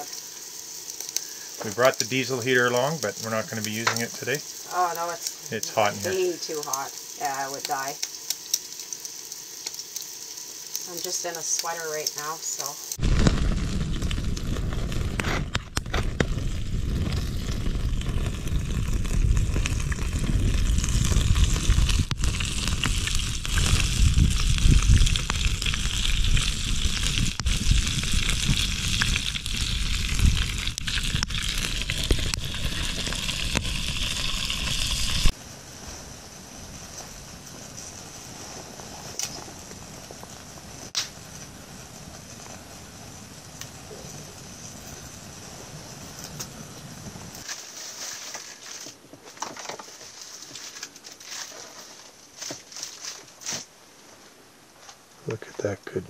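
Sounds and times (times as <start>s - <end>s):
eggs sizzling in pans: 0.0s - 53.6s
sharp crackles of frying: 0.0s - 54.2s
steady hiss: 0.0s - 56.0s.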